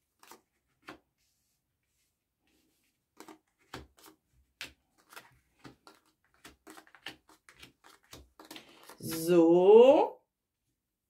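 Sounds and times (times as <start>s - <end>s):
cards slapping on cloth table: 3.1s - 9.2s.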